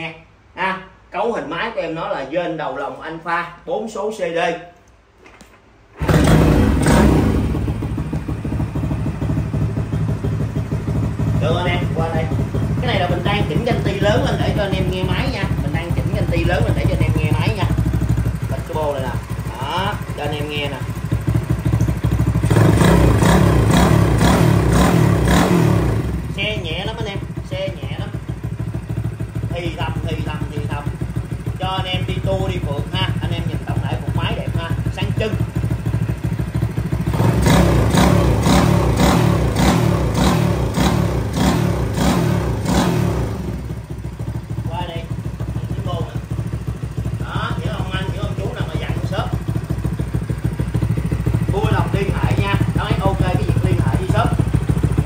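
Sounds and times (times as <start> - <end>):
motorcycle engine idling and revving: 6.0 - 55.0.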